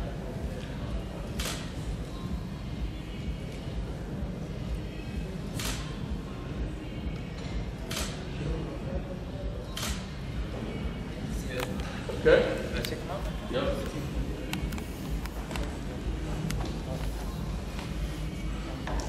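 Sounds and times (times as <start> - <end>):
camera shutter clicks: 1.4 - 1.7, 5.6 - 5.9, 7.9 - 8.2, 9.8 - 10.0.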